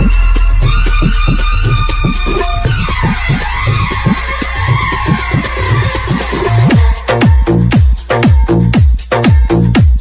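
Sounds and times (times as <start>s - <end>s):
swooping synth skid effect: 0.0s - 7.0s
dj remix music with bass drum beat: 0.0s - 10.0s.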